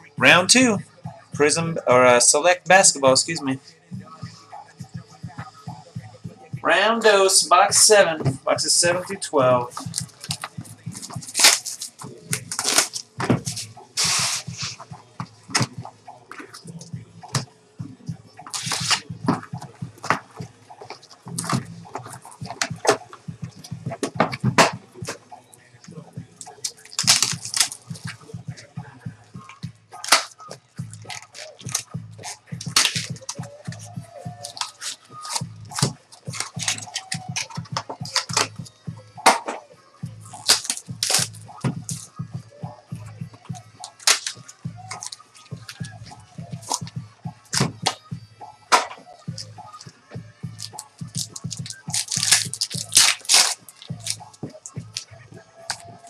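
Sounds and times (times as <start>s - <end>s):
wrappers crinkling: 9.8s - 14.6s, 18.5s - 19.1s, 26.4s - 28.2s, 30.0s - 38.5s, 40.3s - 42.1s, 43.8s - 46.0s, 50.6s - 55.0s
wrappers tearing open: 11.3s - 13.0s, 18.5s - 19.1s, 26.4s - 28.0s, 31.1s - 33.4s, 34.4s - 37.5s, 40.3s - 41.3s, 43.8s - 45.8s, 50.6s - 54.2s.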